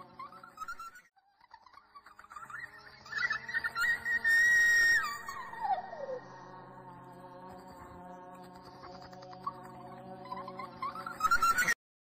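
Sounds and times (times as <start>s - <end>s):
high whistle-like tone: 3.1s - 6.2s.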